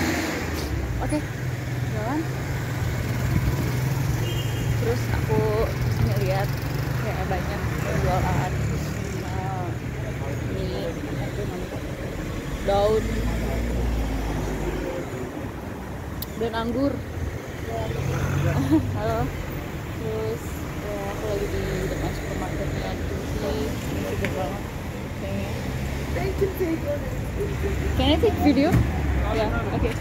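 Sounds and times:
street traffic: 0:00.0 - 0:30.0
vehicle engine humming: 0:00.0 - 0:30.0.

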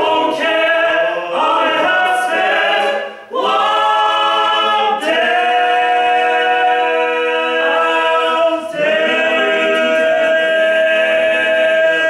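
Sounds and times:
male voices singing in harmony: 0:00.0 - 0:12.0.

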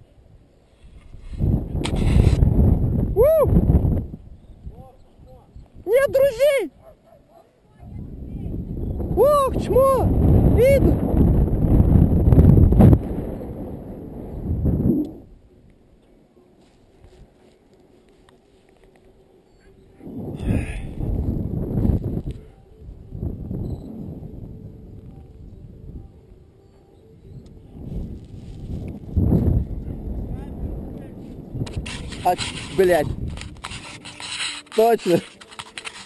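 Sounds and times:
wind rushing over microphone: 0:00.0 - 0:06.9, 0:07.7 - 0:15.7, 0:19.8 - 0:36.0.

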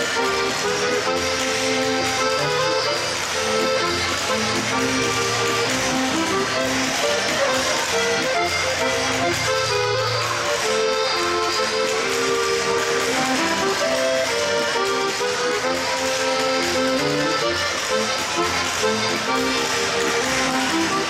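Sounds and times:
lively folk dance music: 0:00.0 - 0:21.0
spoons clacking rhythmically: 0:00.0 - 0:21.0.

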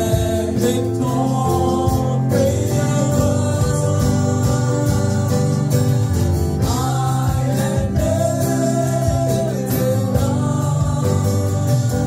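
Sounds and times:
man singing into a microphone: 0:00.0 - 0:12.0
strummed acoustic guitar: 0:00.0 - 0:12.0.

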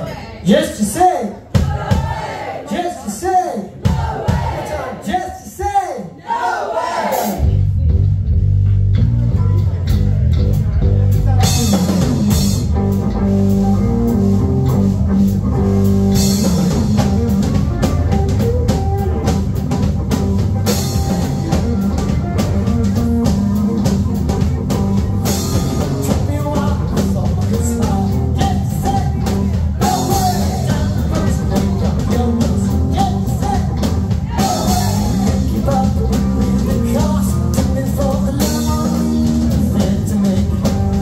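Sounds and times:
live rock band playing: 0:07.2 - 0:41.0.

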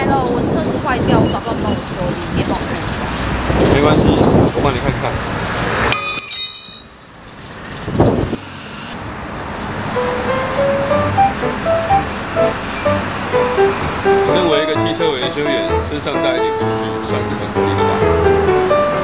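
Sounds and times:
soft background music melody: 0:09.9 - 0:19.0
person speaking: 0:14.2 - 0:18.2.

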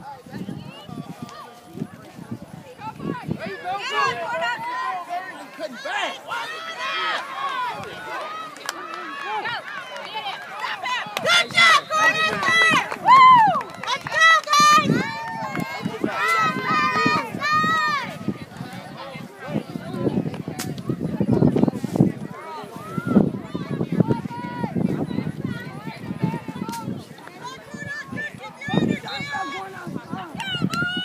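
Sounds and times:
spectators shouting and cheering: 0:00.0 - 0:31.0
people calling out: 0:02.9 - 0:20.0.

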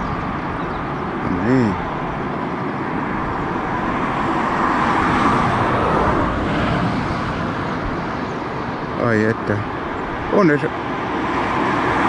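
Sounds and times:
road traffic rush: 0:00.0 - 0:12.0.

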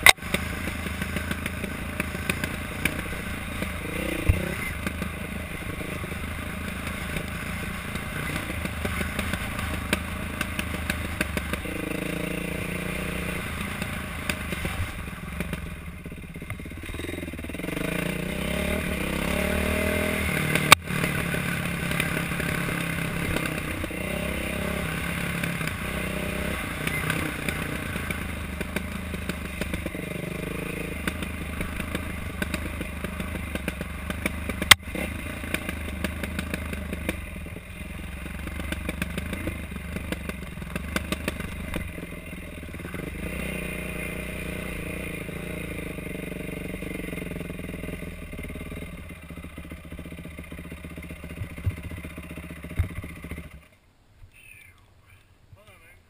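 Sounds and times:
dirt bike engine revving: 0:00.0 - 0:53.8.

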